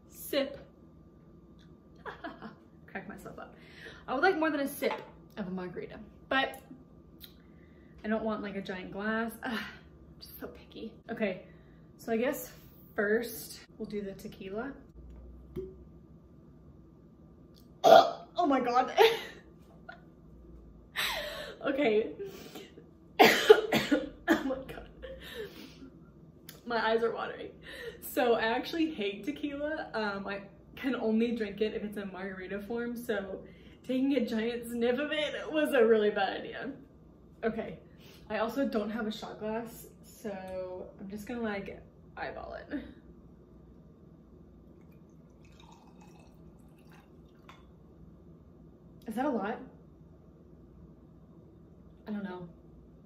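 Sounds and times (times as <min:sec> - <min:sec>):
woman coughing: 0:23.2 - 0:24.8
liquid pouring into a glass: 0:44.7 - 0:47.8.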